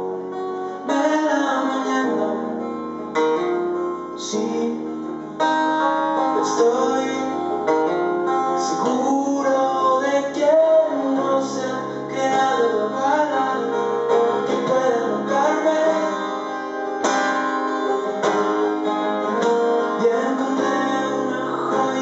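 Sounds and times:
man singing: 0.0 - 3.2, 4.0 - 16.9, 19.2 - 22.0
acoustic guitar strumming: 0.0 - 22.0.

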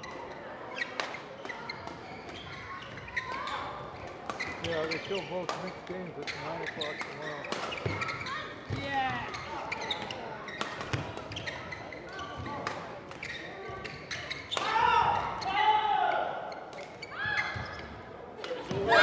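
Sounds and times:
shoes squeaking on court: 0.0 - 15.5, 16.5 - 19.0
rackets hitting shuttlecock: 0.8 - 15.4.

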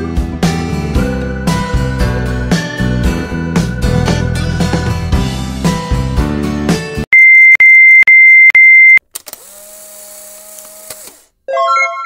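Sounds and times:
high electronic beeps: 7.2 - 9.0.

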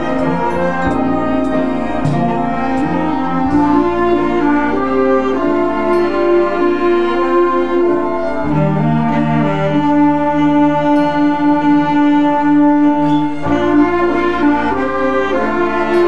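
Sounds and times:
cello and bowed strings: 0.0 - 16.0
low instrumental line: 0.0 - 16.0
orchestra playing slow chords: 0.0 - 16.0.

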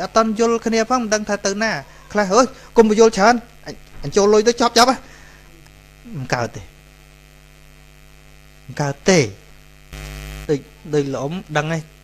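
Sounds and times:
man speaking: 0.0 - 5.2, 6.0 - 6.8, 8.7 - 9.5, 10.5 - 12.0
electrical mains hum: 0.0 - 12.0.

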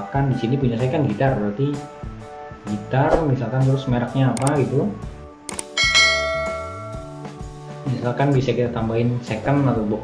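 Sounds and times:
quick clicks: 4.4 - 4.6, 5.5 - 5.8
bright bell ding: 5.8 - 7.3.

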